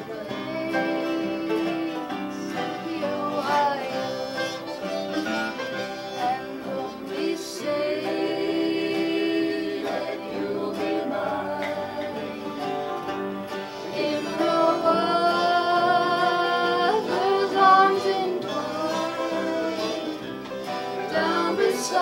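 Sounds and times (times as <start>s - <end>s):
harmonica: 0.0s - 22.0s
person singing: 0.0s - 22.0s
strummed acoustic guitars: 0.0s - 22.0s.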